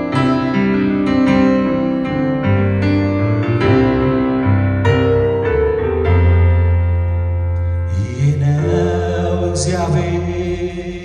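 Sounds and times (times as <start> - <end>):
electronic keyboard chords: 0.0 - 11.0
man singing into microphone: 7.9 - 11.0.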